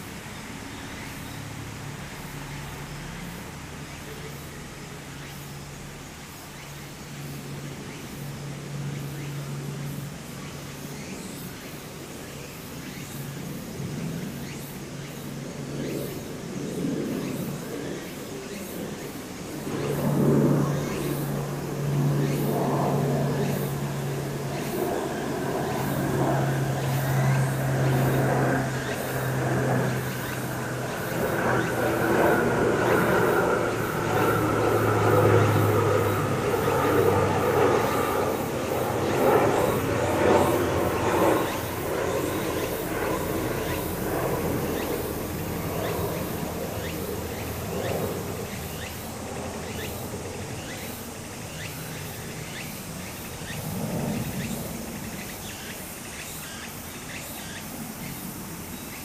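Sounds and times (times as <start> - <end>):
faint cicadas: 0.0 - 59.0
vehicle engine humming: 20.6 - 41.8.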